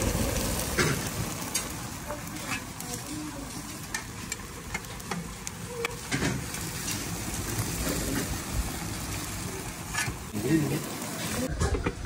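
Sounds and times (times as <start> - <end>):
food sizzling over charcoal: 0.0 - 12.0.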